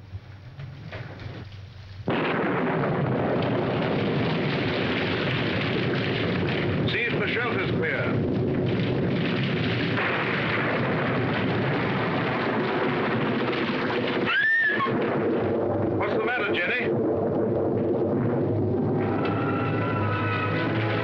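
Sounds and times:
heavy rain and wind: 0.9 - 21.0
horse whinnying: 14.2 - 15.0.

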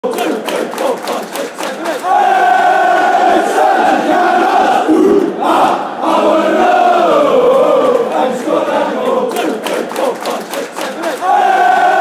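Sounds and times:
football crowd chanting: 0.0 - 12.0.

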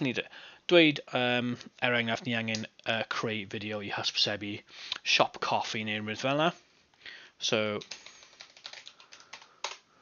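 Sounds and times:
typing on computer keyboard: 7.8 - 9.8.

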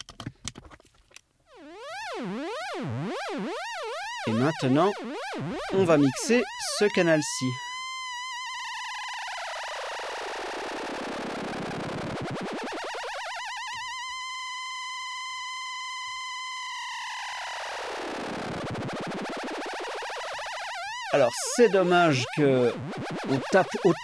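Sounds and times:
buzzy high synthesizer tone: 1.5 - 24.0.

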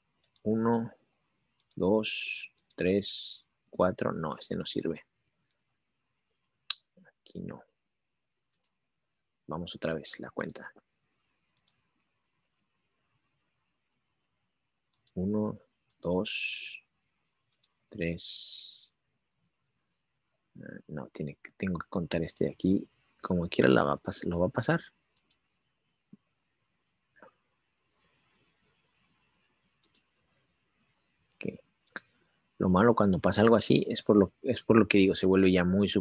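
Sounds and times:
computer mouse clicks: 0.2 - 0.5, 1.5 - 1.8, 2.5 - 2.8, 8.5 - 8.8, 11.4 - 12.0, 14.9 - 15.2, 15.8 - 16.1, 17.5 - 17.8, 25.1 - 26.3, 29.6 - 30.2.

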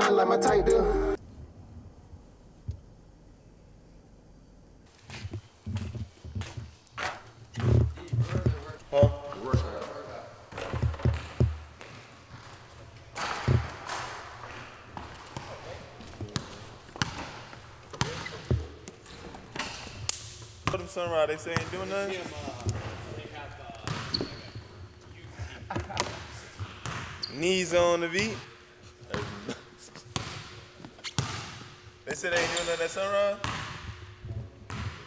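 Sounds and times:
background voices: 0.0 - 1.2
basketballs bouncing on wood floor: 10.5 - 12.6, 13.2 - 19.8, 21.6 - 22.0, 23.8 - 24.6, 25.7 - 27.2, 30.2 - 31.7, 33.4 - 35.0.

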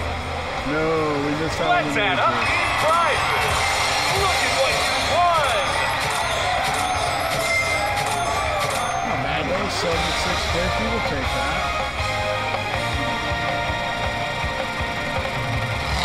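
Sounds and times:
casino background din: 1.8 - 14.2
slot machine music and chimes: 2.4 - 16.0.

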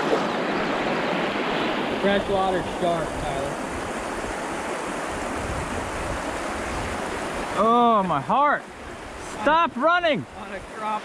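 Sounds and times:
creek water rushing: 0.0 - 11.0.

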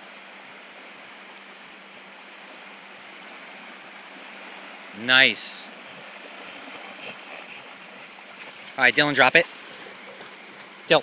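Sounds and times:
small waves washing onto beach: 0.0 - 11.0.

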